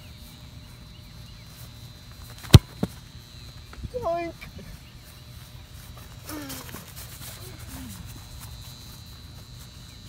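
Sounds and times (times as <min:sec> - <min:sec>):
ball kicked hard: 0:02.4 - 0:03.0.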